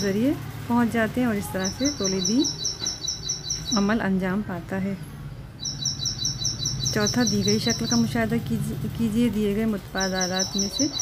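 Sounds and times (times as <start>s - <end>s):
small bird chirping: 1.3s - 4.1s, 5.0s - 8.3s, 9.7s - 11.0s.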